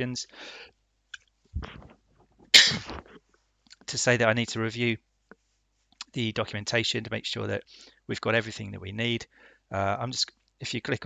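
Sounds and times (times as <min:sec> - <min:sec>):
man sneezing: 0:02.6 - 0:03.2.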